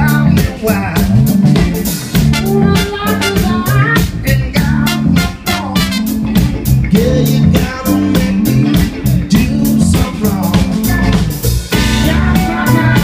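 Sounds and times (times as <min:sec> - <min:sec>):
drum kit beat: 0:00.0 - 0:13.0
electric guitar: 0:00.0 - 0:13.0
low bass line: 0:00.0 - 0:13.0
trombone and trumpet held notes: 0:02.2 - 0:04.0, 0:04.6 - 0:06.4, 0:11.7 - 0:13.0.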